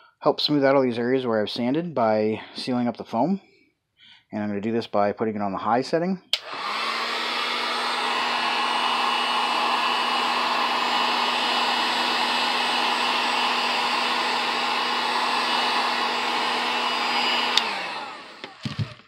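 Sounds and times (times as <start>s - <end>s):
heat gun switch click: 6.3s - 6.8s, 17.3s - 18.8s
heat gun blowing air: 6.4s - 19.0s.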